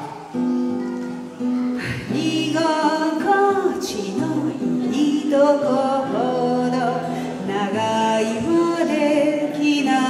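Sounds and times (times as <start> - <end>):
woman singing: 1.8 - 10.0.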